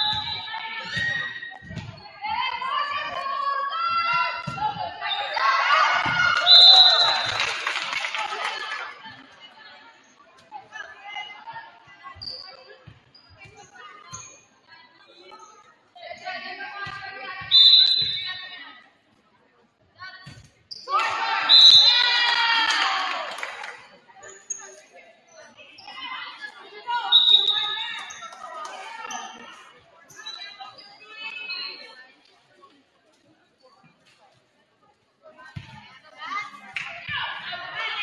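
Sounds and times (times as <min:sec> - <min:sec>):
voices calling and cheering: 0:00.0 - 0:12.8, 0:20.8 - 0:32.2
volleyball bouncing on gym floor: 0:04.0 - 0:04.9
voices echoing: 0:20.0 - 0:32.8.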